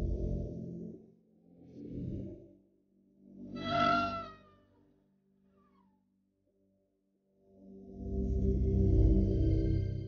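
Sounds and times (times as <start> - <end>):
faint low music drone: 0.0 - 4.3, 7.4 - 10.0
high falling animal call: 3.6 - 4.7.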